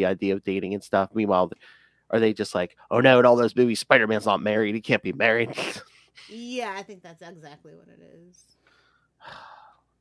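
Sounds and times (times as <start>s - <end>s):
person speaking: 0.0s - 8.4s
close breath: 1.6s - 2.1s, 8.6s - 9.9s.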